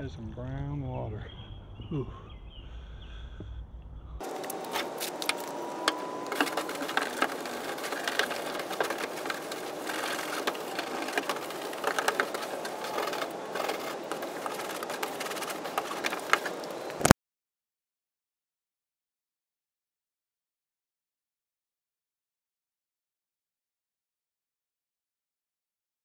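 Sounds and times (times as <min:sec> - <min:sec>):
scrubbing inside plastic tank: 0:04.2 - 0:16.9.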